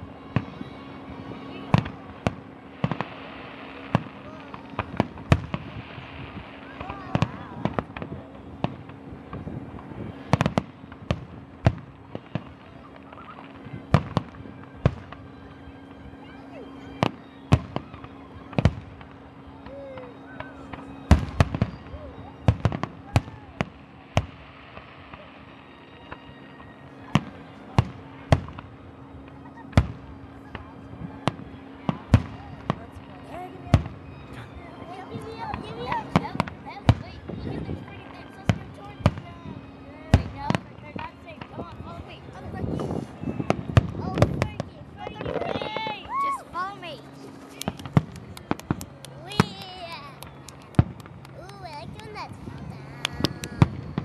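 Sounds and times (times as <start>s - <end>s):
fireworks bangs: 0.0s - 15.4s, 16.9s - 25.4s, 27.1s - 54.0s
crowd chatter: 0.0s - 54.0s.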